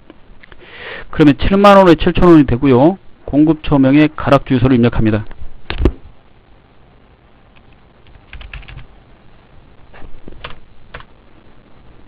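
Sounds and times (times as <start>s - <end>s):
computer keyboard typing: 7.6s - 8.9s, 10.4s - 11.1s.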